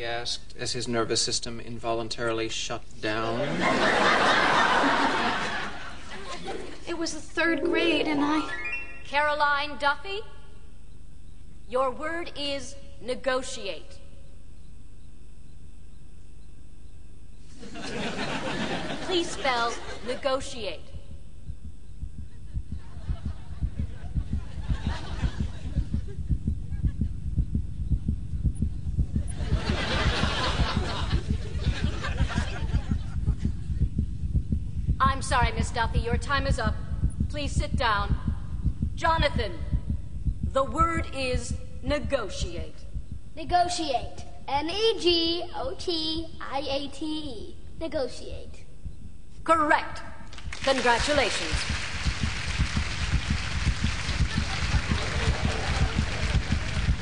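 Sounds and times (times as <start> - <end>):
fast heartbeat thuds: 20.8 - 44.6, 48.8 - 49.3, 50.4 - 57.0
audience applauding: 50.3 - 57.0.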